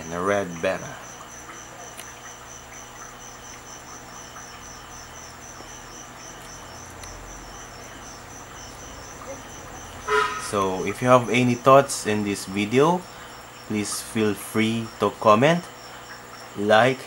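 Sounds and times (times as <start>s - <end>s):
faint low hum: 0.0s - 17.0s
insect chirping: 0.0s - 17.0s.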